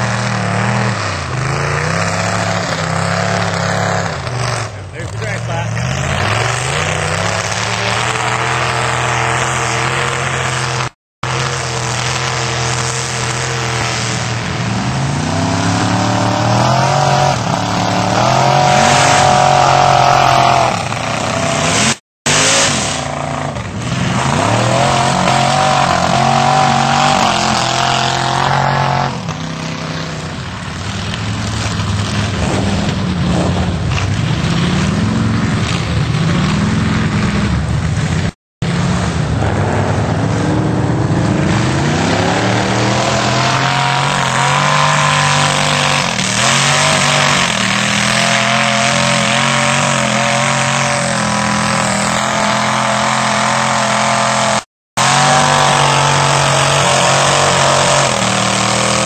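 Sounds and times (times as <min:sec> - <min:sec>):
truck engines revving: 0:00.0 - 0:59.0.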